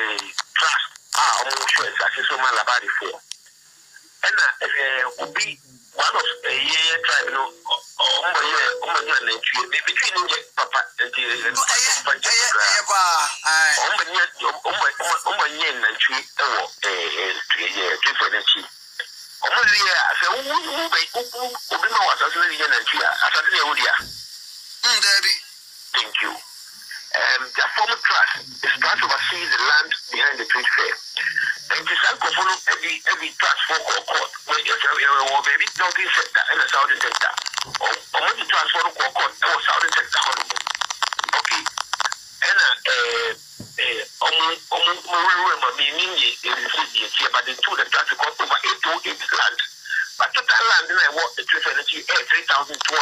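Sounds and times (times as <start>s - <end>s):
person talking: 0.0s - 3.3s, 4.2s - 18.7s, 19.4s - 24.1s, 26.0s - 41.7s, 42.4s - 53.0s.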